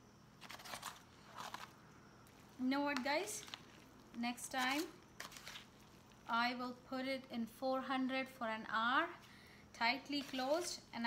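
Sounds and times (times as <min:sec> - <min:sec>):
spoon scraping foil tray: 0:00.4 - 0:01.7, 0:02.9 - 0:06.2, 0:10.0 - 0:10.9.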